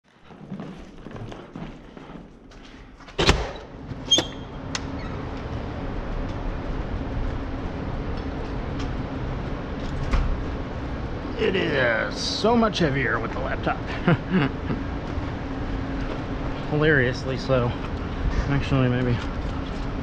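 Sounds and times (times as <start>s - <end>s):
outdoor background hum: 0.1s - 20.0s
metal door banging open: 3.2s - 4.4s.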